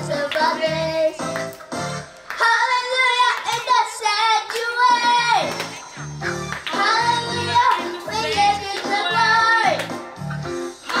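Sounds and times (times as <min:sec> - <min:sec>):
backing track music: 0:00.0 - 0:11.0.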